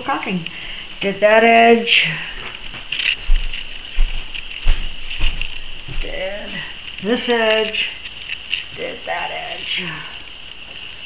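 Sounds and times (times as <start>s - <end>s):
high-pitched hiss: 0.0s - 11.0s
footsteps thudding: 2.4s - 6.2s.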